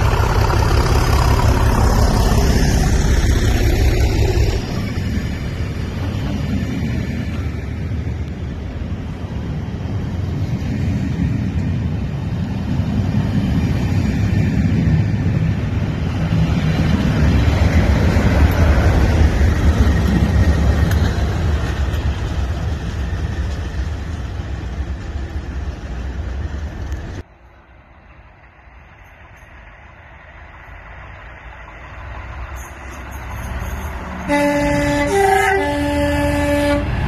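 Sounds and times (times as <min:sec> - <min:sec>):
diesel locomotive engine: 0:00.0 - 0:37.0
train wheels rumbling: 0:00.0 - 0:37.0.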